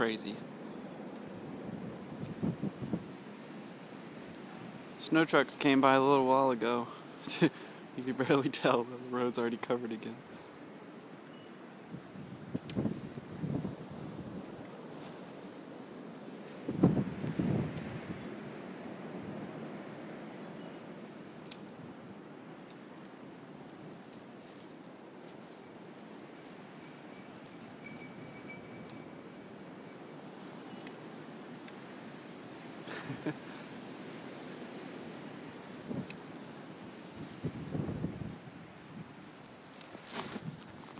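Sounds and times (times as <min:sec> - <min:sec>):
wind on phone microphone: 0:01.4 - 0:03.2, 0:11.9 - 0:14.7, 0:16.5 - 0:18.4, 0:35.8 - 0:36.3, 0:37.1 - 0:39.2.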